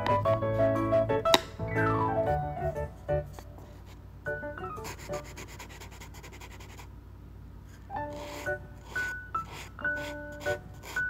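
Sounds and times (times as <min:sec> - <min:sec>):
falling piano notes: 0:00.0 - 0:03.6
brush scratching on paper: 0:04.8 - 0:06.9, 0:08.0 - 0:11.0.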